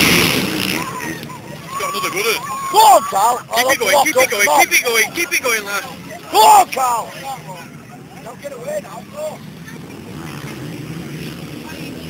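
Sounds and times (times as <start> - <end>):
distant motocross bikes racing: 0.0 - 12.0.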